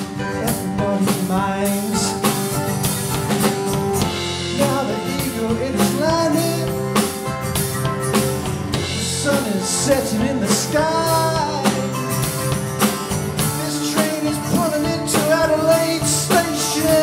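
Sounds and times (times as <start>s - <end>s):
person singing: 0.0s - 2.7s, 4.3s - 7.2s, 8.8s - 12.5s, 13.4s - 17.0s
drum kit: 0.0s - 17.0s
strummed acoustic guitar: 0.0s - 17.0s.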